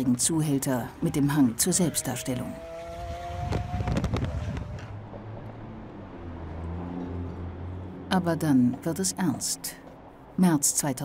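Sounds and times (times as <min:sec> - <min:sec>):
wind and road noise in car: 0:02.3 - 0:10.4.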